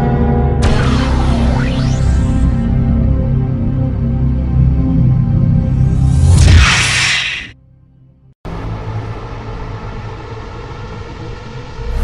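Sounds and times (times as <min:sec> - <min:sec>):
low rumbling music drone: 0:00.0 - 0:06.4, 0:07.6 - 0:12.0.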